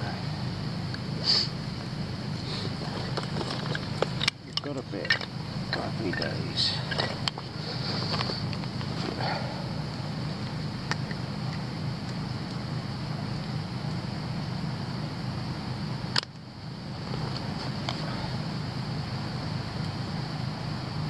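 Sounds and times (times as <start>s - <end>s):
steady low rumble: 0.0s - 21.0s
kindling sticks clicking: 2.7s - 9.0s.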